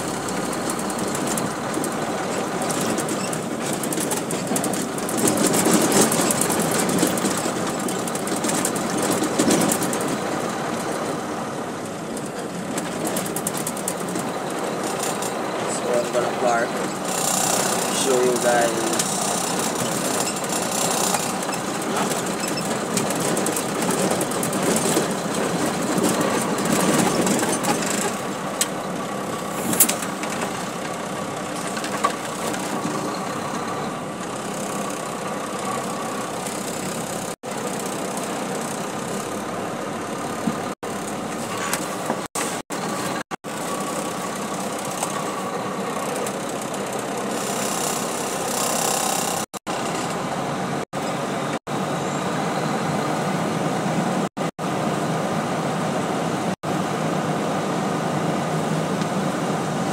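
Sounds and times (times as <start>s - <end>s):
cab rattles and knocks: 0.0s - 10.9s, 16.8s - 28.8s
road noise: 0.0s - 59.9s
truck engine running: 0.0s - 59.9s
person speaking: 15.6s - 17.0s, 17.9s - 19.4s.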